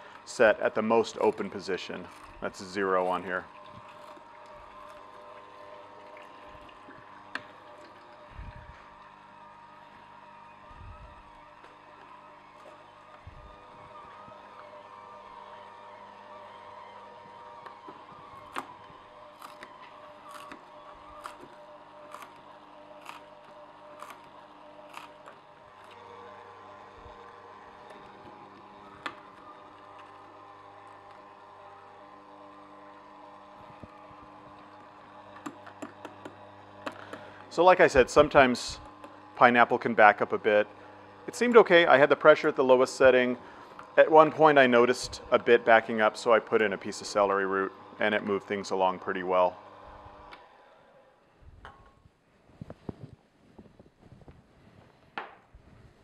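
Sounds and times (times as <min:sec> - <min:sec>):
juicer motor humming: 0:00.0 - 0:56.0.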